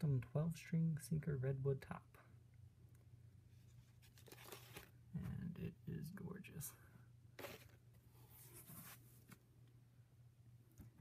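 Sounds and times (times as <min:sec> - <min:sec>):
rustling handling noise: 0:03.5 - 0:05.0, 0:07.4 - 0:09.5.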